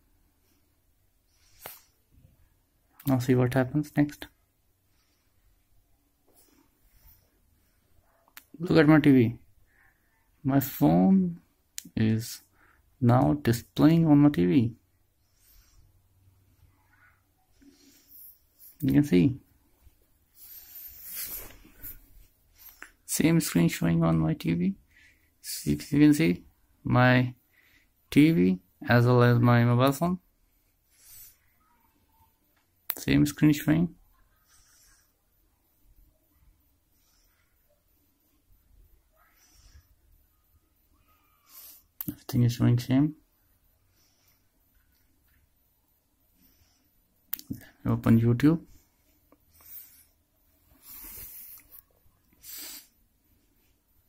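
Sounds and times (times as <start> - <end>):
soft brushing handling noise: 17.6 - 23.7.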